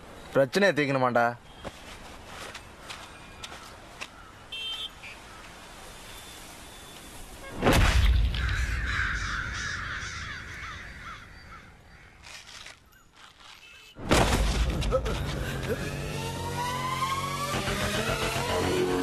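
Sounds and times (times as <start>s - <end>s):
crows cawing: 3.5s - 4.4s, 8.3s - 12.4s.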